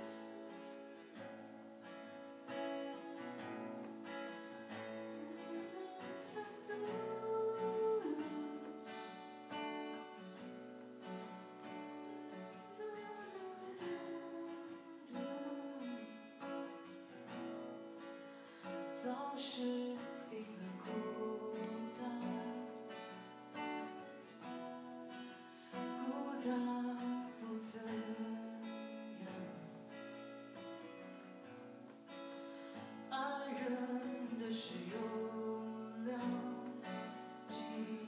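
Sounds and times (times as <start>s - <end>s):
acoustic guitar strumming: 0.0s - 38.0s
person singing: 4.8s - 9.1s, 12.3s - 16.6s, 19.0s - 23.1s, 25.2s - 29.8s, 33.1s - 38.0s.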